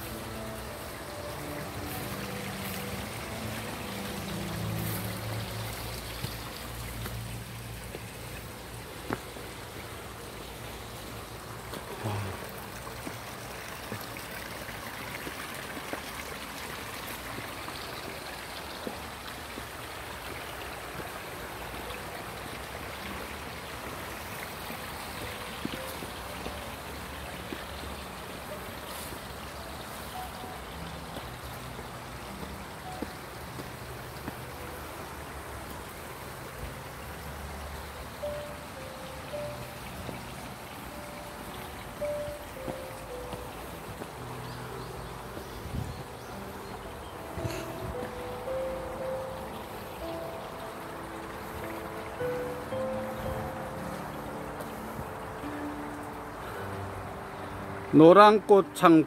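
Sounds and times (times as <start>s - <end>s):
faint music: 0.0s - 59.0s
stream running over rocks: 0.0s - 59.0s.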